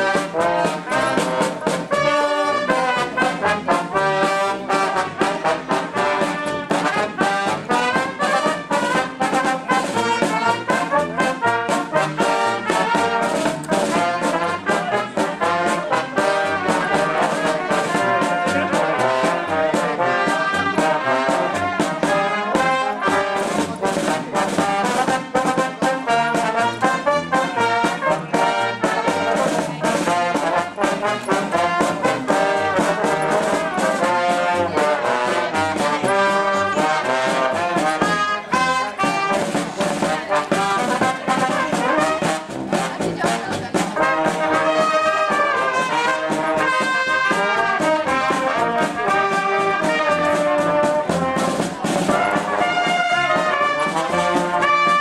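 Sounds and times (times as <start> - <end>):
brass band playing lively tune: 0.0 - 55.0.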